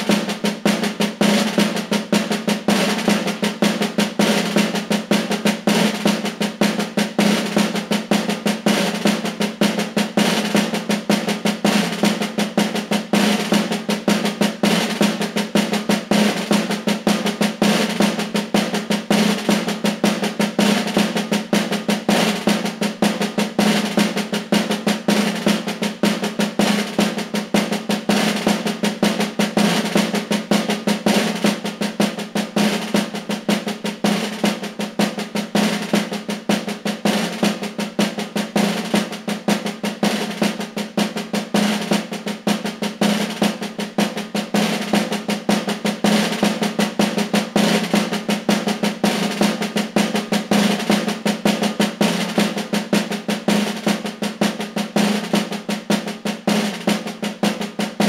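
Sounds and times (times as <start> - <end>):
snare drum rolls: 0.0 - 58.0.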